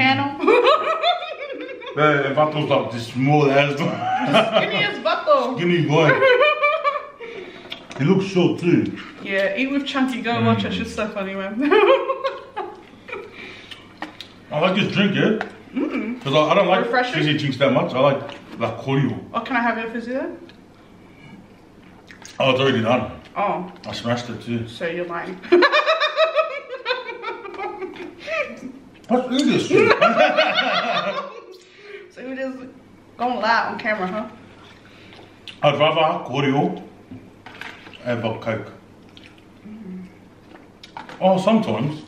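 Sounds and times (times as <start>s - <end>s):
person laughing: 3.9s - 4.9s
woman giggling: 15.8s - 16.2s, 26.5s - 28.8s.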